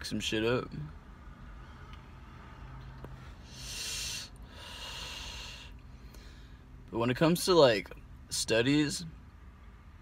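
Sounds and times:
hissing vape inhale: 3.4 - 6.3
long hissing exhale: 3.4 - 6.4.

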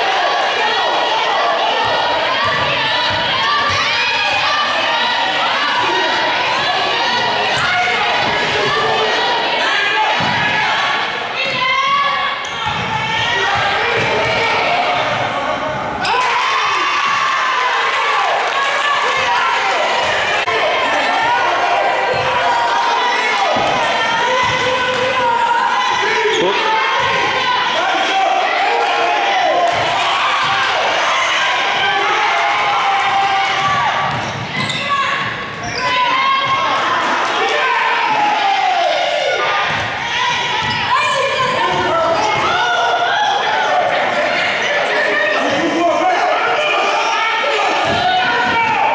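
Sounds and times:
players and spectators shouting: 0.0 - 48.9.

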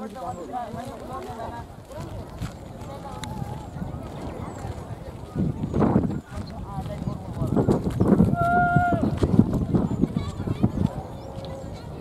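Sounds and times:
distant people talking and calling: 0.0 - 12.0.

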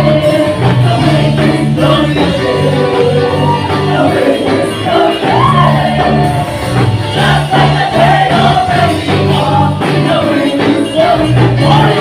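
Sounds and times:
band playing gospel song: 0.0 - 12.0
singers in unison: 0.0 - 12.0.

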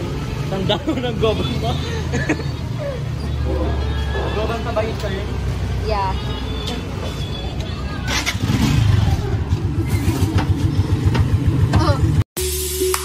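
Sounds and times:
motorcycle engine running: 7.9 - 12.2.

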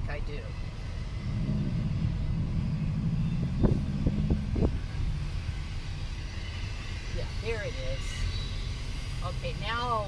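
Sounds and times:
car driving rumble: 0.0 - 10.0
steady low hum: 0.0 - 10.0.

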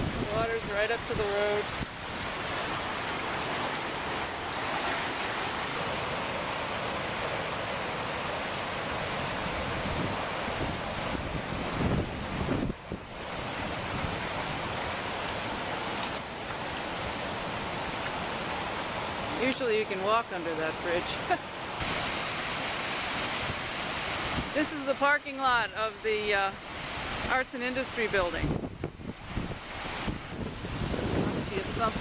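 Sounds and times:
wind rumble on microphone: 0.0 - 3.2, 9.2 - 15.6, 23.0 - 24.6, 28.1 - 32.0
river rushing: 0.0 - 32.0.

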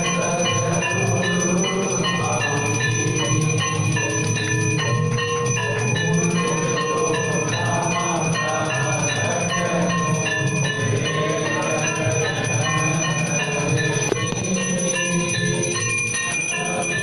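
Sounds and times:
temple bells ringing: 0.0 - 17.0.

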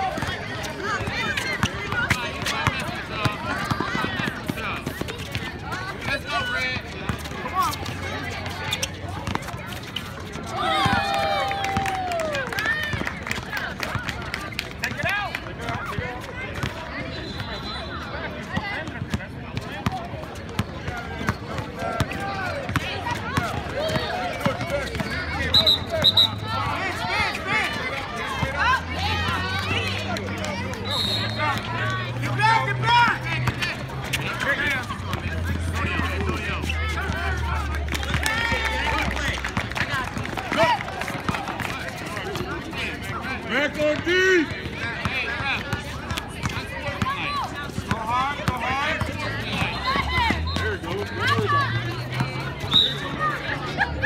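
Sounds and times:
basketball bouncing on asphalt: 0.0 - 6.1, 6.8 - 11.1, 12.6 - 14.2, 14.9 - 17.0, 18.5 - 26.2, 33.2 - 43.2, 43.9 - 52.5
people shouting: 10.6 - 12.3.

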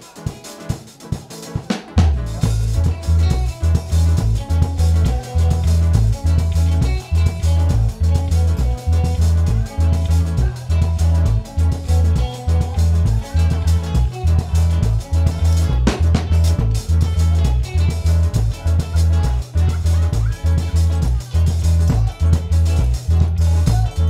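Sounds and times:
live band playing: 0.0 - 24.0
heavy bass pulse: 2.2 - 24.0.

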